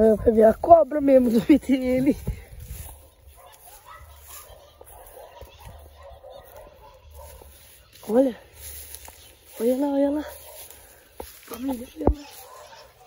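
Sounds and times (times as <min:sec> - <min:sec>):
person speaking: 0:00.0 - 0:02.8, 0:06.5 - 0:13.0
low rumble of wind: 0:00.0 - 0:03.4.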